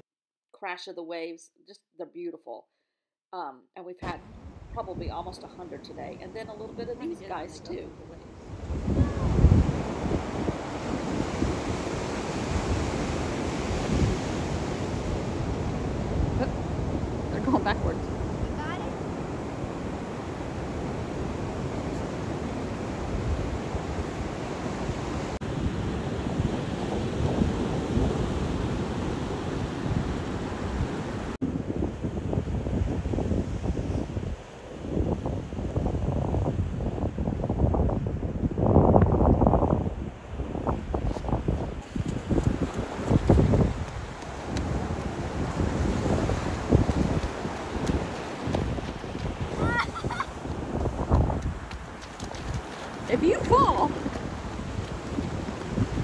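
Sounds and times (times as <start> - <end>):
ocean surf washing: 4.0 - 56.0
wind gusts buffeting microphone: 4.0 - 56.0.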